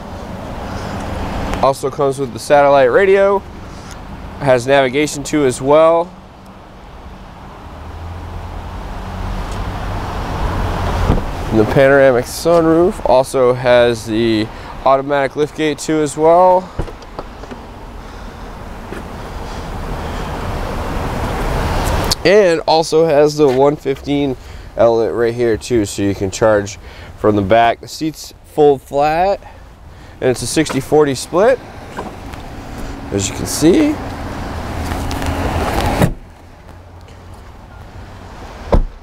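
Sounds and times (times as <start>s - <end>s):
vehicle road noise: 0.0s - 39.0s.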